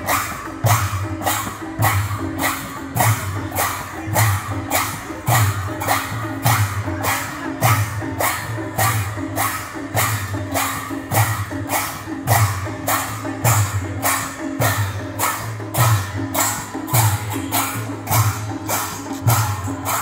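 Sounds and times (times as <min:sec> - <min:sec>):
brass hand cymbals clashing: 0:00.0 - 0:20.0
deep barrel drum strokes: 0:11.0 - 0:20.0.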